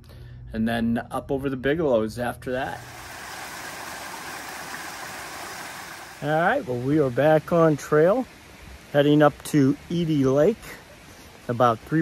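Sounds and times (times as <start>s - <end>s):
stream water rushing over rock: 2.7s - 9.3s.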